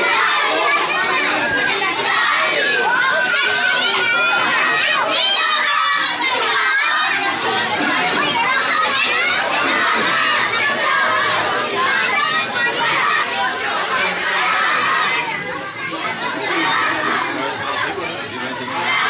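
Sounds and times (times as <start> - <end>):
crowd shouting together: 0.0 - 19.0.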